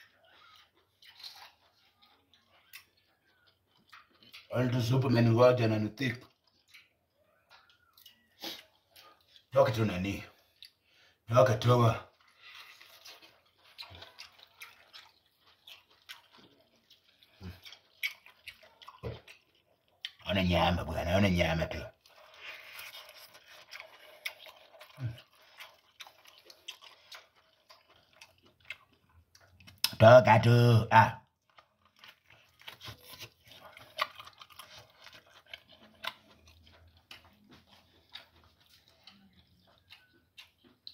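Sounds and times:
wet chewing mouth clicks: 0.0s - 4.5s, 6.2s - 9.5s, 12.0s - 20.3s, 22.0s - 30.0s, 31.4s - 40.9s.

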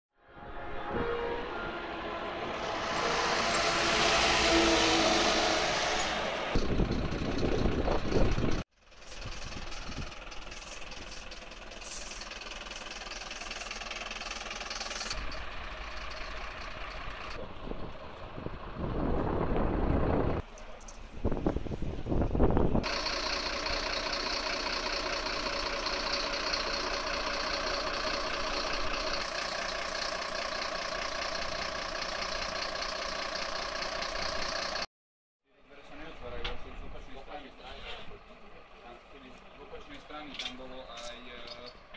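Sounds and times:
fire engine driving past: 0.2s - 34.9s, 35.7s - 41.9s
fire truck engines idling: 5.9s - 34.9s, 35.6s - 41.9s.

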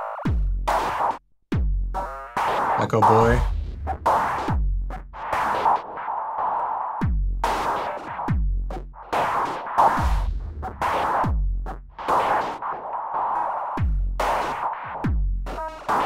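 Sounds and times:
deep electronic kick drums: 0.2s - 0.8s, 1.5s - 2.2s, 3.1s - 5.2s, 7.0s - 7.5s, 8.3s - 9.0s, 10.0s - 12.0s, 13.8s - 14.3s, 15.0s - 15.8s.

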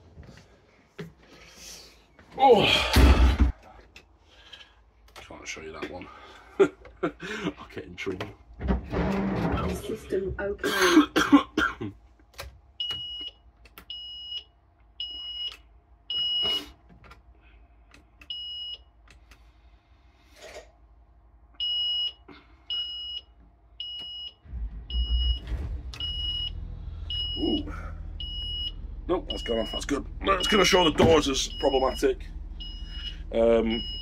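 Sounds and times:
bus engine idling: 24.6s - 34.0s
warning buzzer beeping: 26.0s - 34.0s.

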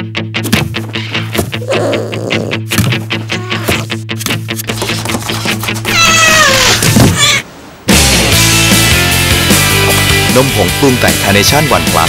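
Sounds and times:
cat meowing: 3.3s - 3.8s, 5.9s - 7.4s.

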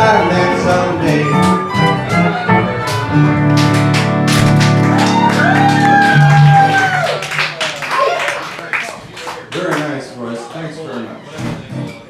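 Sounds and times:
fiddle: 0.0s - 4.2s
acoustic guitar: 0.0s - 6.5s
audience clapping and cheering: 1.0s - 10.1s.

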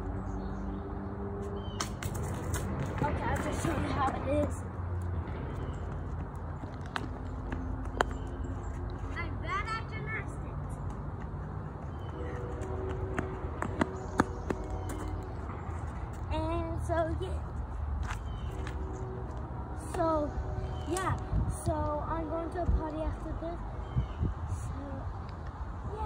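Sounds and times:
footsteps running on concrete: 5.4s - 9.4s, 10.5s - 16.2s.

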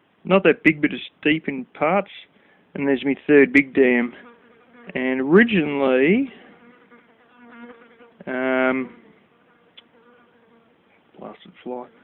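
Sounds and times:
housefly buzzing: 4.0s - 5.0s, 6.5s - 10.9s.

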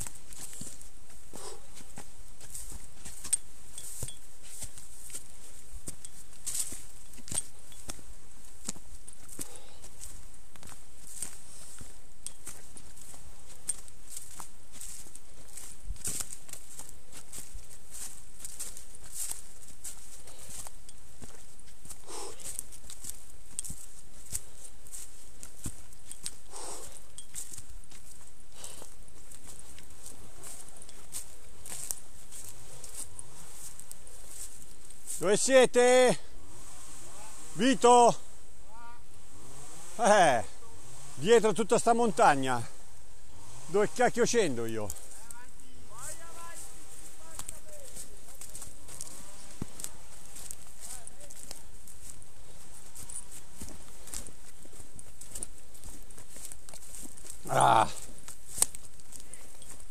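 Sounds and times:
footsteps on rocky path: 0.0s - 59.9s
leaves rustling: 0.0s - 59.9s
steady hiss: 24.4s - 50.8s.

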